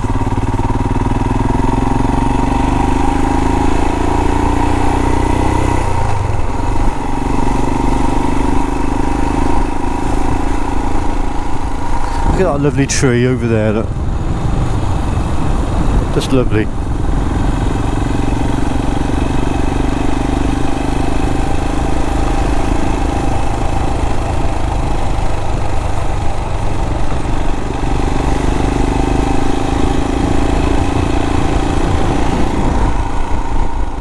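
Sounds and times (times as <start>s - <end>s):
motorcycle engine running: 0.0s - 34.0s
tyres on wet road: 0.0s - 34.0s
wind rush: 9.5s - 20.3s, 22.0s - 34.0s.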